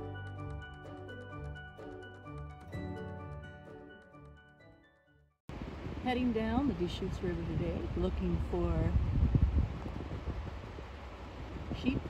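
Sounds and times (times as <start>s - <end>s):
wind buffeting microphone: 5.5s - 12.0s.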